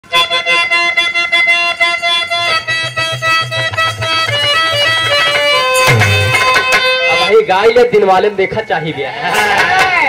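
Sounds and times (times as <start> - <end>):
harmonium fast melodic run: 0.0 - 8.6.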